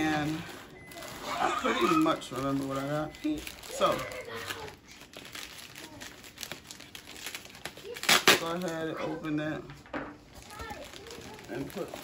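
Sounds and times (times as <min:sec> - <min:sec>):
bubble wrap crinkling: 0:00.0 - 0:09.5, 0:10.2 - 0:12.0.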